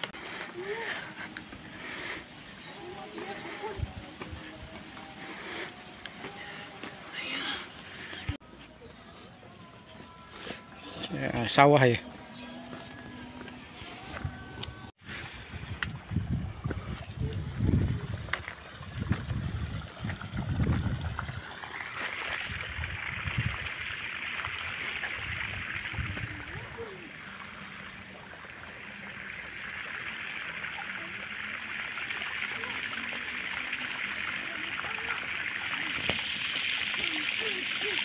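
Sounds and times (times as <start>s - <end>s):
water rushing: 0.0s - 8.7s, 17.1s - 38.0s.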